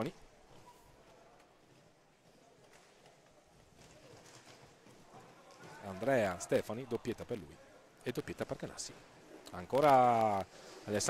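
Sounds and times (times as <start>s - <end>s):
faint roller hockey game: 0.0s - 11.0s.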